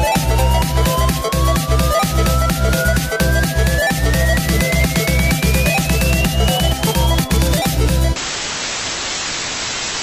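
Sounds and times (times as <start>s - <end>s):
electronic music: 0.0s - 8.2s
static-like white noise hiss: 8.2s - 10.0s.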